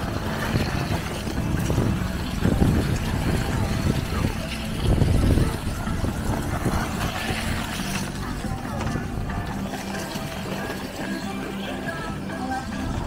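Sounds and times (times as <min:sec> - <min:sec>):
background music: 0:00.0 - 0:13.0
crowd chatter: 0:00.0 - 0:13.0.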